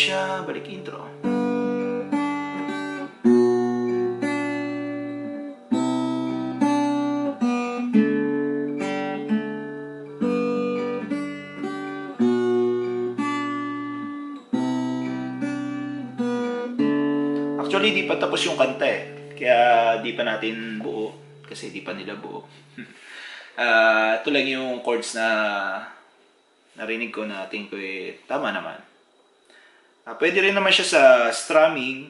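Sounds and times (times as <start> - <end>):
acoustic guitar chords: 0.0 - 25.2.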